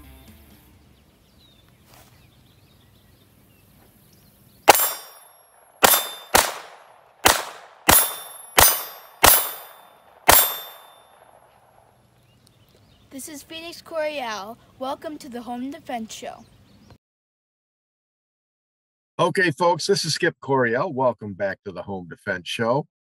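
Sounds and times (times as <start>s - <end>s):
pistol shots: 4.7s - 11.5s.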